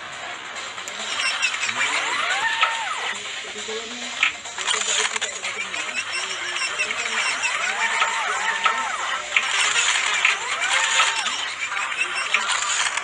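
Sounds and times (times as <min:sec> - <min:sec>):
voice-like fragments: 0:00.0 - 0:13.0
chirpy effects with pitch glides: 0:00.6 - 0:03.2, 0:04.3 - 0:13.0
scattered clicks: 0:00.6 - 0:03.2, 0:04.1 - 0:13.0.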